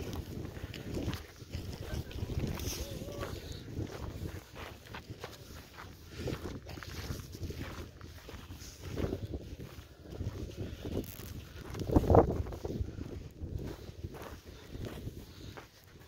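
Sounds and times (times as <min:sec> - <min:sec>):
footsteps on gravelly ground: 0:00.0 - 0:16.0.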